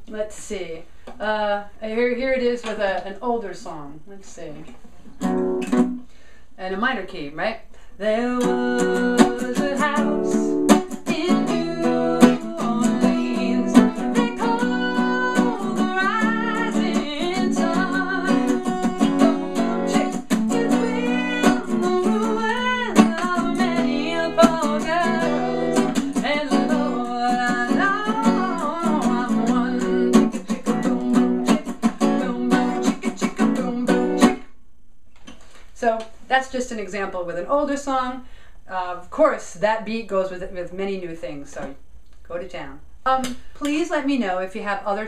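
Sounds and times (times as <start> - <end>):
acoustic guitar strumming: 5.2 - 6.0, 8.2 - 34.5
woman singing folk melody: 8.0 - 34.5.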